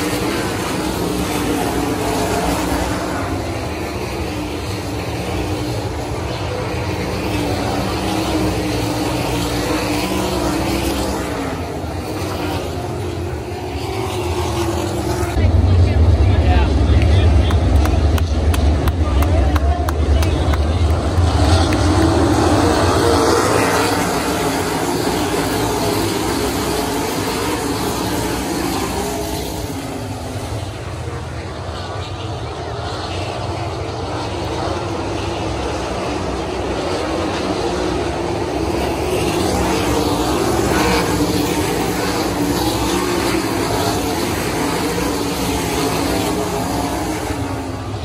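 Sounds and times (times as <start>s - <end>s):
race car engines at speed: 0.0s - 48.0s.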